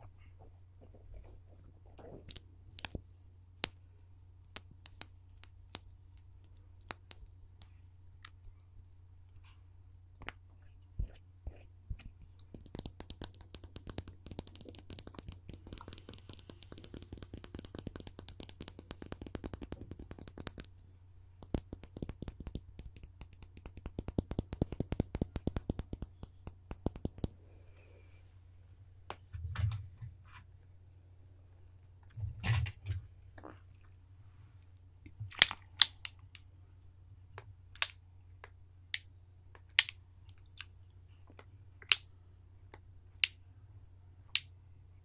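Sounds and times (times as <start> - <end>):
fingernails tapping and scratching: 12.0 - 20.8, 21.4 - 27.3.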